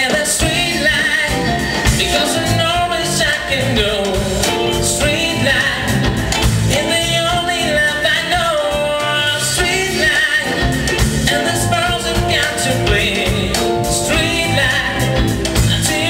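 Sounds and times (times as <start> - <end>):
drums: 0.0 - 16.0
electric bass: 0.0 - 16.0
keyboards: 0.0 - 16.0
man singing: 0.0 - 16.0.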